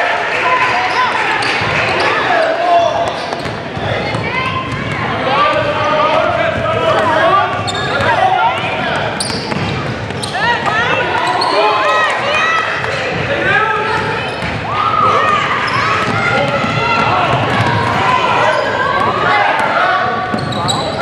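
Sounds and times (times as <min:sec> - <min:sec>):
sneakers squeaking: 0:00.9 - 0:21.0
basketball bouncing: 0:03.1 - 0:11.3, 0:13.9 - 0:14.7, 0:15.9 - 0:18.0.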